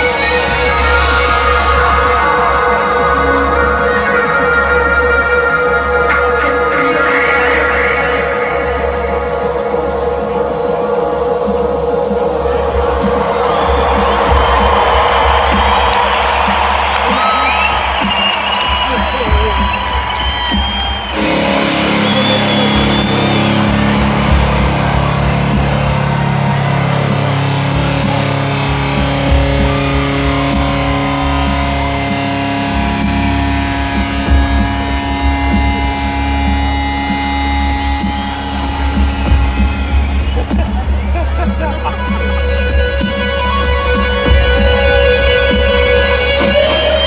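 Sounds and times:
crowd cheering and whistling: 0.0s - 47.0s
keyboard and guitar chords: 0.0s - 47.0s
drum machine ticking: 11.2s - 46.9s.

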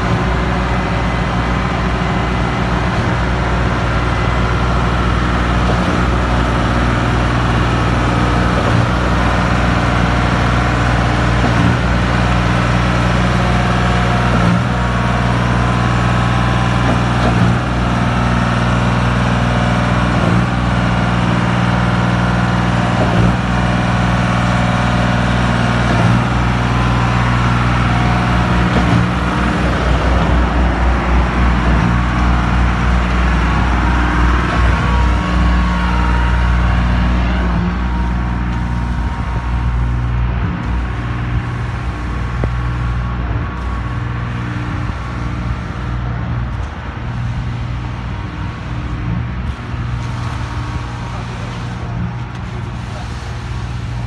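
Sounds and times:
diesel engines running: 0.0s - 54.0s
pulsing low rumble: 0.0s - 54.0s.

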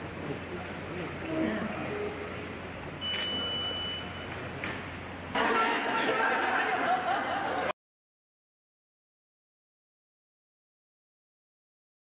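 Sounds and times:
murmur of room noise: 0.0s - 7.8s
high steady beep: 3.0s - 4.3s.

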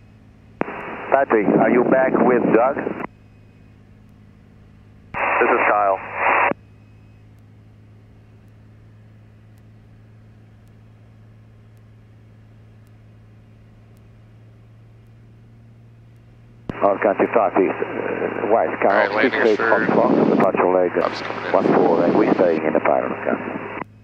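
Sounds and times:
airplane engine drone: 0.0s - 24.0s
radio voice traffic: 0.6s - 3.1s, 5.2s - 6.6s, 16.7s - 23.8s.

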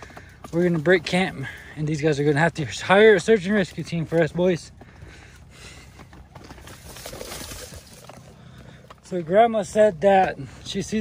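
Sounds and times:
dry corn stalks rustling: 0.0s - 10.8s
stroller wheels crunching on dirt: 0.0s - 11.0s.

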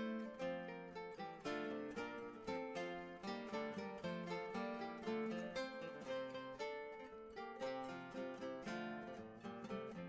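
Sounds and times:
plucked-string early music: 0.0s - 10.0s.

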